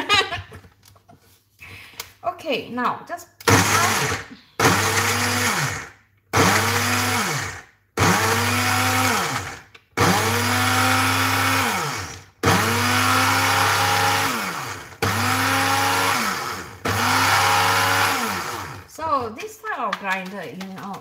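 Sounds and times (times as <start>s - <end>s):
blender grinding in short pulses: 3.5s - 18.9s.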